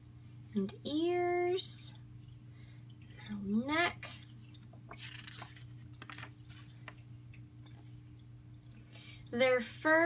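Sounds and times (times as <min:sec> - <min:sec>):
hand sliding over book pages: 0:05.0 - 0:06.9.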